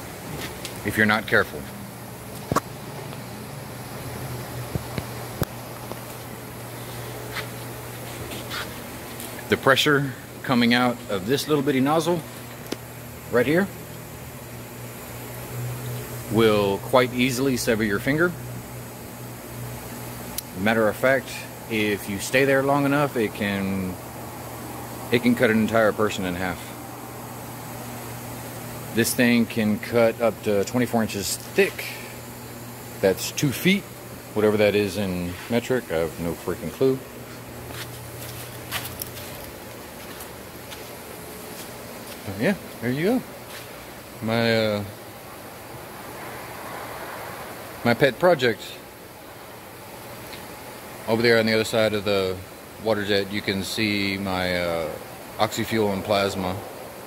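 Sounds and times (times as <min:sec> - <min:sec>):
low machine hum: 0:00.0 - 0:57.0.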